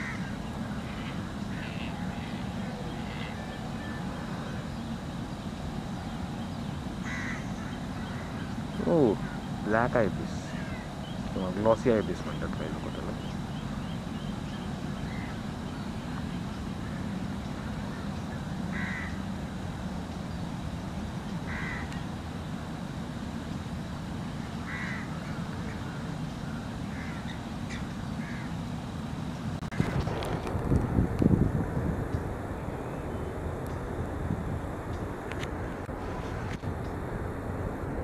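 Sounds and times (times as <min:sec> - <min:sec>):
crow cawing: 0:00.0 - 0:04.6, 0:07.0 - 0:09.5, 0:10.4 - 0:11.2, 0:15.0 - 0:15.4, 0:18.7 - 0:19.2, 0:21.5 - 0:22.0, 0:24.6 - 0:28.5
steady low rumble: 0:00.0 - 0:38.0
microphone handling rumble: 0:29.7 - 0:37.0.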